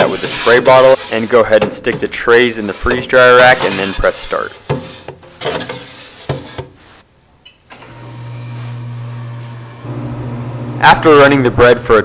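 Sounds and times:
freeze dryer humming: 7.8s - 11.7s.

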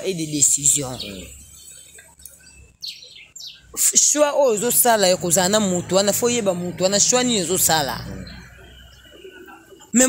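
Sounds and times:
small bird chirping: 0.7s - 3.8s.

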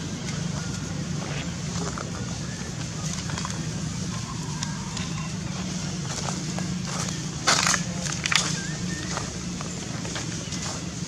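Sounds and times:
steady low hum: 0.0s - 11.0s
dry leaves crunching underfoot: 2.9s - 11.0s.

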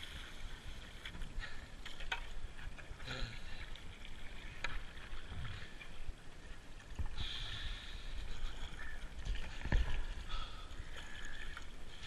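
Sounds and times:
paddle blades splashing: 0.0s - 12.0s.

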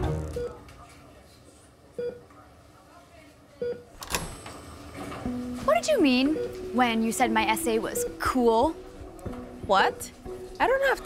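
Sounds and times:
patient monitor beeping: 3.6s - 8.7s.

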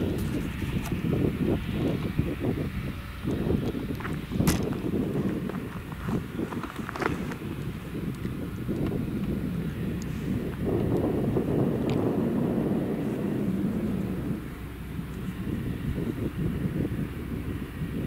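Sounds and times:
harvester engine rumbling: 0.0s - 18.0s.

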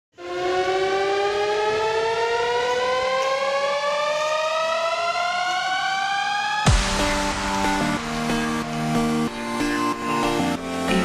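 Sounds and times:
rising siren-like tone: 0.1s - 10.4s.

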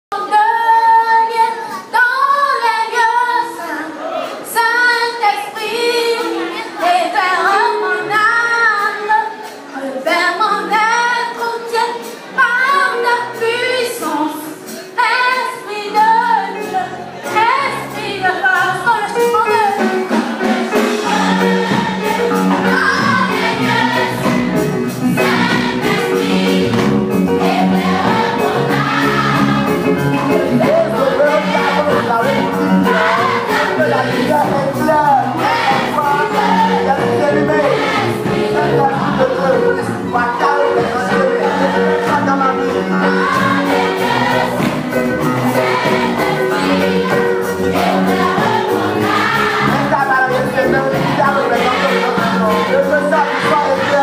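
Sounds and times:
girls' choir singing gospel: 0.1s - 54.0s
musical accompaniment: 0.1s - 54.0s.

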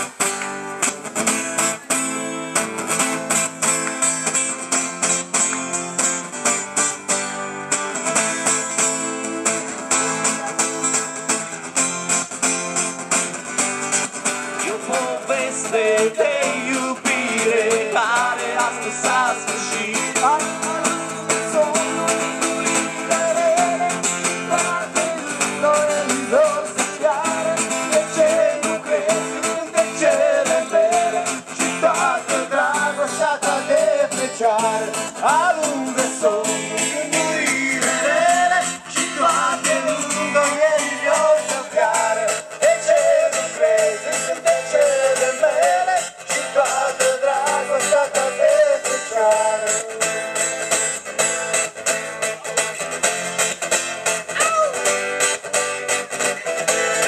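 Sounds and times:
guitars strumming: 0.0s - 57.0s.

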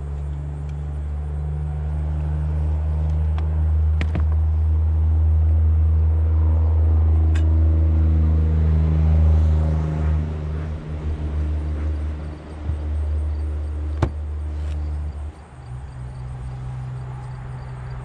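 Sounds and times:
low engine hum: 0.0s - 18.0s.

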